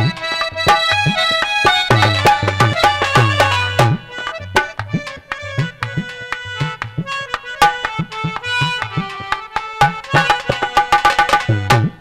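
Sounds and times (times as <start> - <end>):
harmonium melody: 0.0 - 12.0
tabla playing a quick beat: 0.0 - 12.0.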